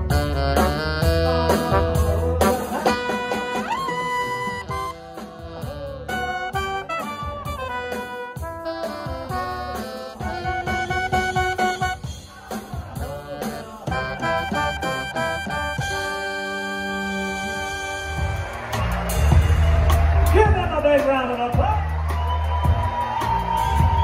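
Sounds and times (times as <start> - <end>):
trumpet notes and slides: 0.0 - 20.4
orchestra playing: 0.0 - 22.0.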